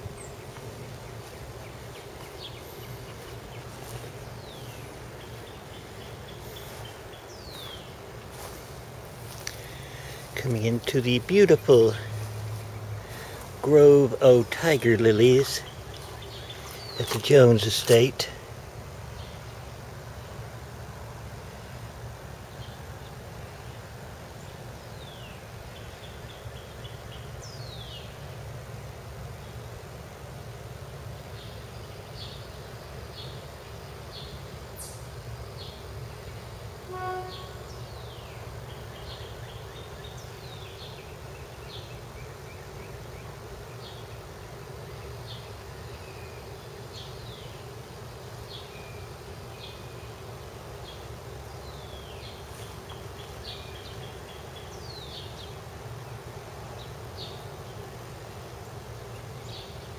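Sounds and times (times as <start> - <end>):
steady low hum: 0.0 - 59.9
honk-like note: 36.9 - 37.7.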